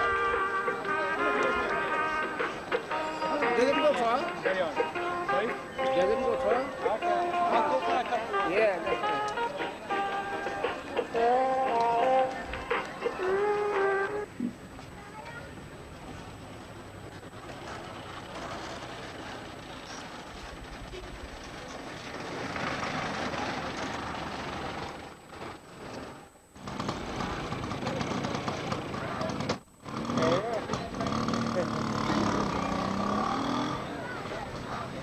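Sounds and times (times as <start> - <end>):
street noise: 0.0 - 35.0
people talking indistinctly: 0.3 - 14.2.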